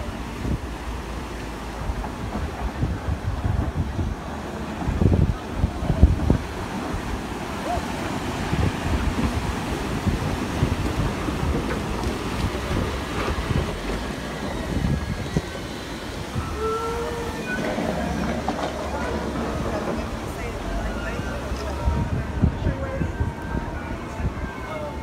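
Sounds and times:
wind rumbling on microphone: 0.0s - 25.0s.

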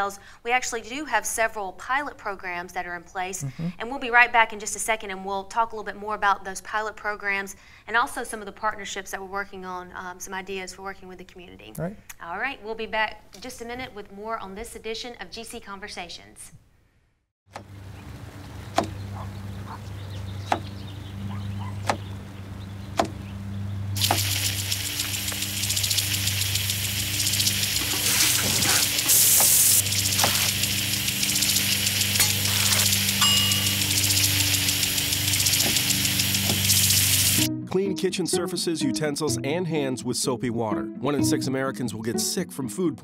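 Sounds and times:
sharp taps: 20.5s - 20.7s, 21.8s - 22.0s, 23.0s - 23.2s
lawn sprinkler spraying water: 24.0s - 37.4s
low music: 36.0s - 43.0s.

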